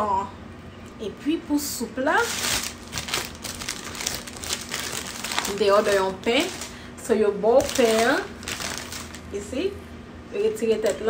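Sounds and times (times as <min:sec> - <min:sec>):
paper bag crinkling: 0:02.2 - 0:06.9, 0:07.5 - 0:09.3.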